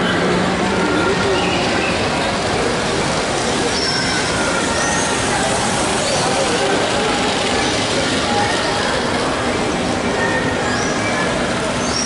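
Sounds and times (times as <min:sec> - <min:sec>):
indistinct voices: 0:00.0 - 0:12.0
model train running: 0:00.0 - 0:12.0.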